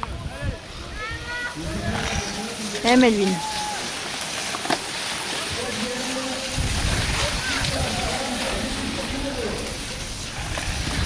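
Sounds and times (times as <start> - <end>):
bike tyres running through sand: 0.1 - 11.0.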